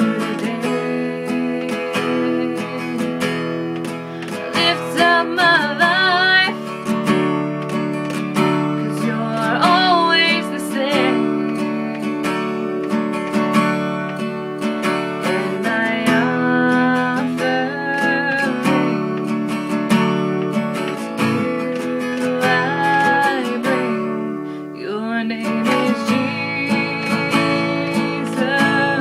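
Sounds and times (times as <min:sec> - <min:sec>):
woman singing: 0:00.0 - 0:07.4, 0:08.0 - 0:12.9, 0:14.8 - 0:29.0
strummed acoustic guitar: 0:00.0 - 0:29.0.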